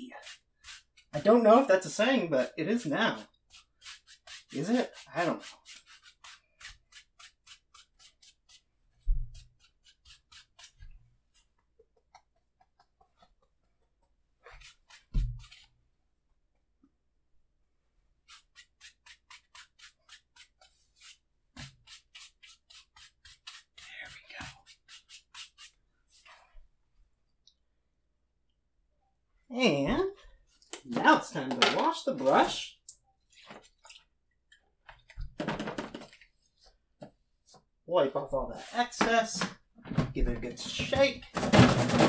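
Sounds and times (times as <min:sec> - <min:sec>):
brush scrubbing paint on canvas: 0:00.0 - 0:11.7, 0:13.0 - 0:15.8, 0:18.2 - 0:26.7.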